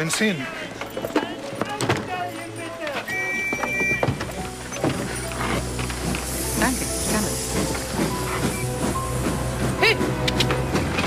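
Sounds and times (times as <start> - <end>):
quiet film-score music: 0.0 - 11.0
steam hissing: 4.4 - 11.0.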